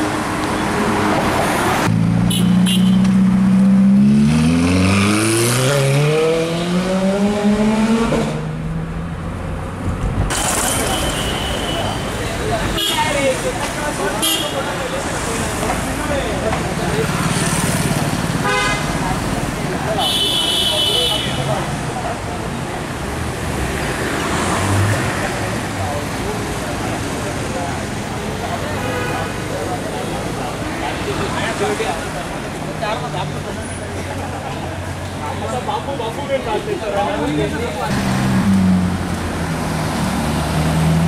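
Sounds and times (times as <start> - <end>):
street traffic: 0.0 - 41.0
car horns honking: 2.2 - 3.2, 10.3 - 13.3, 14.2 - 14.7, 18.4 - 19.0, 19.9 - 21.5
crowd chattering: 8.0 - 41.0
people talking: 10.6 - 23.2, 24.9 - 38.2.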